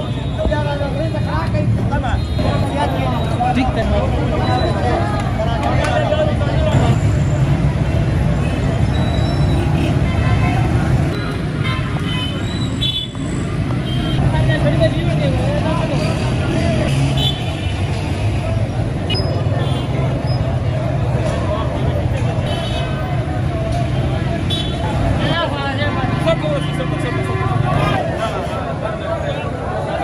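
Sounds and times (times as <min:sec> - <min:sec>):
crowd chatter: 0:00.0 - 0:30.0
street traffic rumble: 0:00.0 - 0:30.0.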